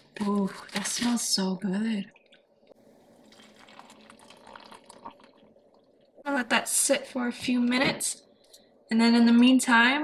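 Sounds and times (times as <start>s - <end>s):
water pouring into glass mug: 3.1s - 5.9s.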